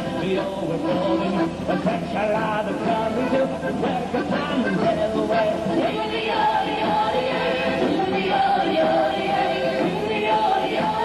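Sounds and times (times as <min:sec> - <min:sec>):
group singing in harmony: 0:00.0 - 0:11.0.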